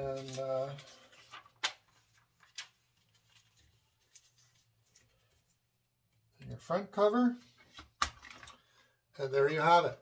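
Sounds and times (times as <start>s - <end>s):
paper rustling and tapping: 0.0s - 5.5s.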